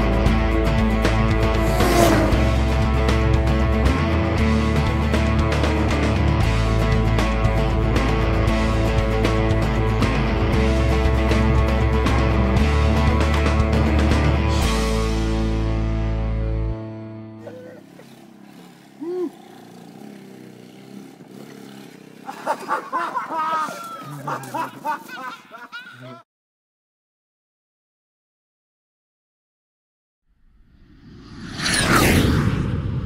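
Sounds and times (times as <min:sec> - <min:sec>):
distant quad bike engine: 0:00.0 - 0:14.4, 0:17.4 - 0:25.0
music: 0:00.0 - 0:17.5
person shouting a call: 0:19.0 - 0:19.4
jet airplane flyby: 0:30.4 - 0:33.0.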